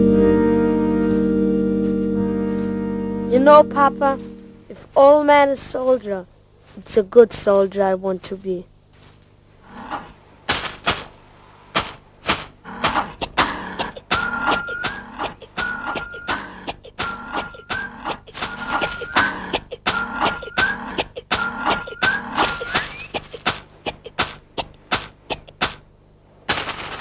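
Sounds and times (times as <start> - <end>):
sharp knocks and clacks: 21.3 - 25.8.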